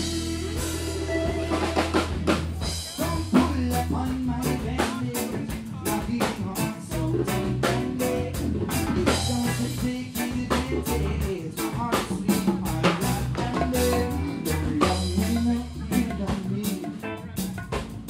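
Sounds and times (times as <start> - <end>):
drum kit beat: 0.0 - 18.0
steady bass line: 0.0 - 18.0.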